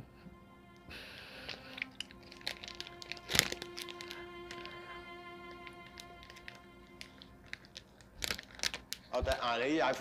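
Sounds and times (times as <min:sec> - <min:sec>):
quiet background music: 0:00.0 - 0:10.0
plastic wrapper crinkling: 0:01.5 - 0:10.0.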